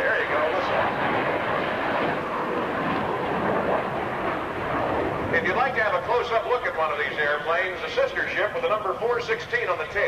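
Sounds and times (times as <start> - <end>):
jet fly-by rushing noise: 0.2 - 7.2.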